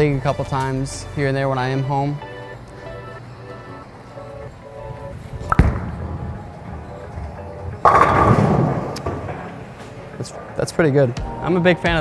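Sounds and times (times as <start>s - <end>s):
bowling pins clattering: 4.5s - 10.9s
bowling ball thud and rumble: 5.5s - 6.2s, 7.1s - 9.6s.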